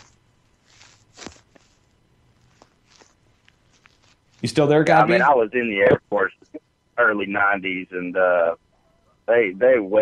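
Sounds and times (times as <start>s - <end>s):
soft scuffs: 0.0s - 4.5s.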